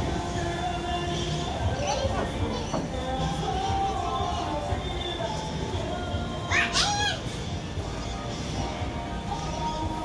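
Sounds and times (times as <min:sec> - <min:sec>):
background music: 0:00.0 - 0:10.0
child squealing: 0:06.4 - 0:07.4.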